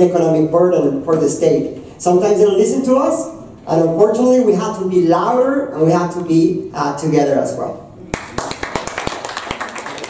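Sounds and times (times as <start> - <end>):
audience applause: 8.1 - 10.0.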